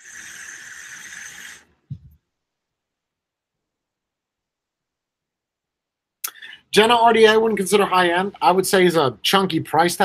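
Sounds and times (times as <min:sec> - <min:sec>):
airy hiss of vape draw: 0:00.0 - 0:01.7.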